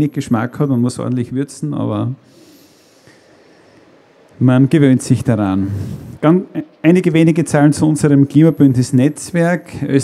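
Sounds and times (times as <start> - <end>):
man speaking: 0.0 - 2.2, 4.4 - 10.0
faint steady hiss: 0.0 - 10.0
breath into microphone: 2.2 - 4.1, 5.6 - 6.2.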